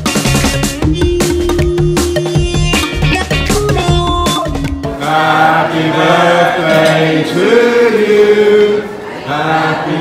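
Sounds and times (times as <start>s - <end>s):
men singing together: 4.9s - 10.0s.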